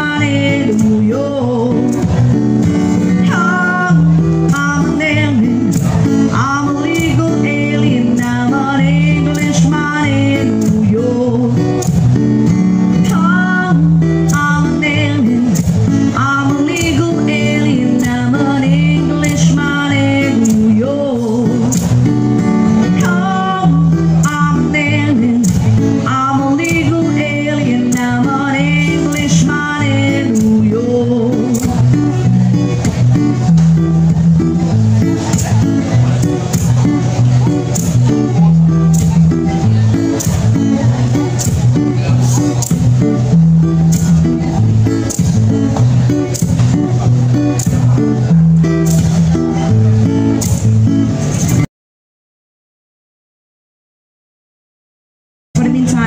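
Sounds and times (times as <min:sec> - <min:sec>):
person singing: 0:00.0 - 0:33.6
acoustic guitar strumming: 0:00.0 - 0:51.7, 0:55.6 - 0:56.0.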